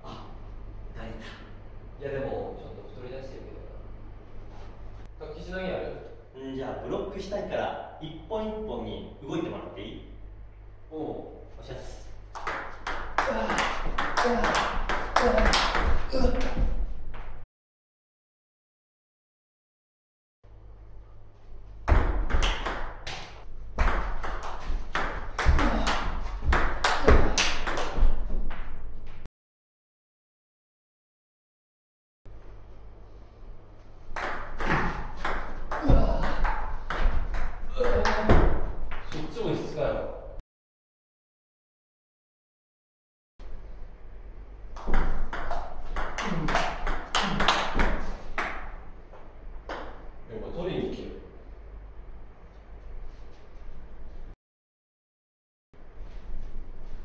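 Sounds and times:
table tennis ball hitting rackets: 12.3s - 17.4s, 21.8s - 28.8s, 34.1s - 39.2s, 44.8s - 50.1s.

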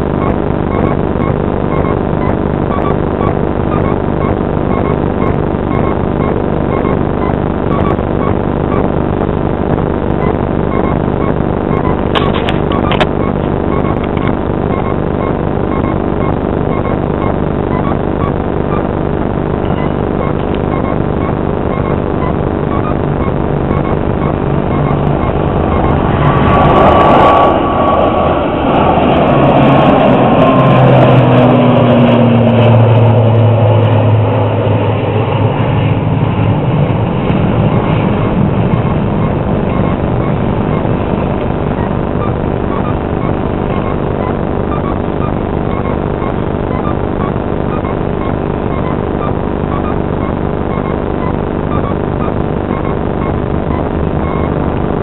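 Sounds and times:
steady drone: 0.0s - 55.0s
jet airliner passing overhead: 25.4s - 41.4s.

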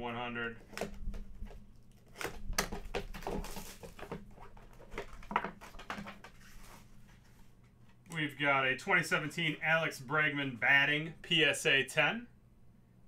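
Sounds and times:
hard plastic and cardboard clicks: 0.6s - 6.2s.

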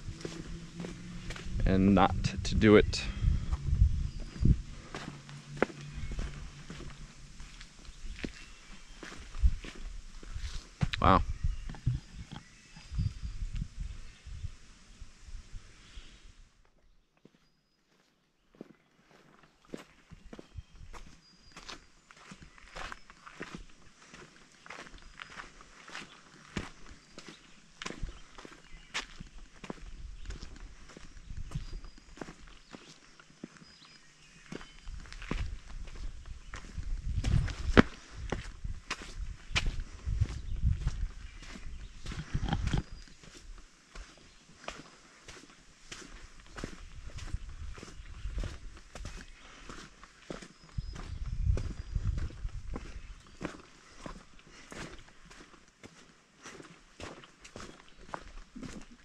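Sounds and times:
low rumble: 0.0s - 8.2s
footsteps crunching on dirt trail: 0.0s - 13.2s, 17.2s - 59.0s.

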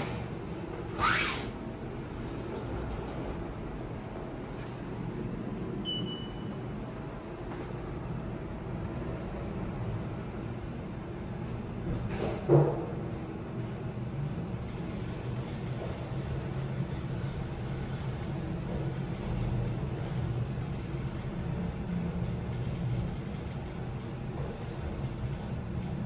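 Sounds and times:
elevator car low rumble: 0.0s - 26.0s
faint high whine: 1.0s - 11.4s, 13.1s - 26.0s.

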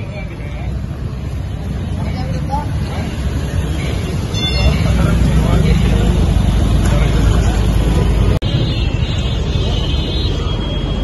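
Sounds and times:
people talking: 0.0s - 8.4s
bus engines rumbling: 0.0s - 11.0s.

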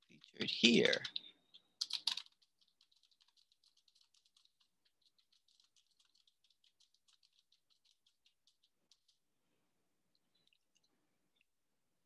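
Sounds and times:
typing on computer keyboard: 0.1s - 9.2s.

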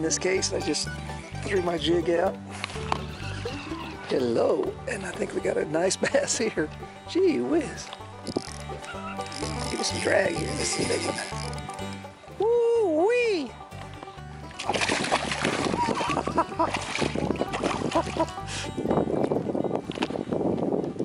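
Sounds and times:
fish splashing at water surface: 14.6s - 18.3s.

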